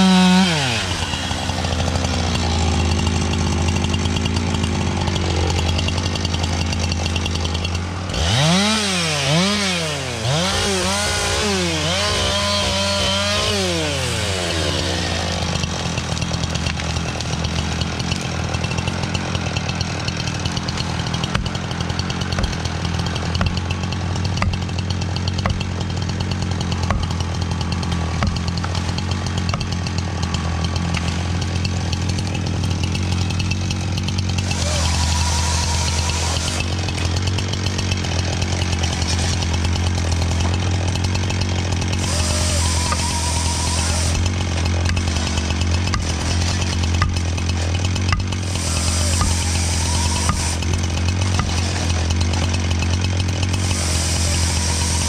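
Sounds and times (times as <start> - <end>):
chainsaw running: 0.0 - 55.0.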